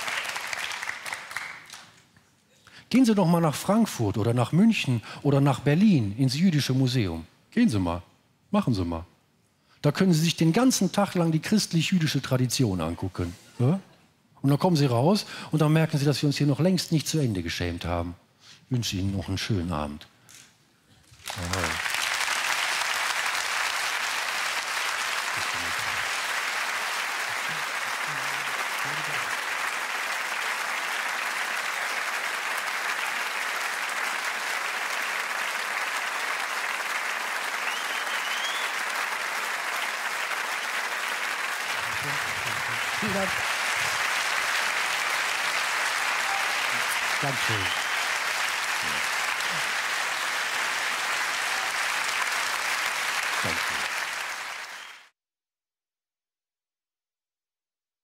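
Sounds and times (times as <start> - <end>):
audience applauding: 0.0 - 2.1, 21.2 - 55.1.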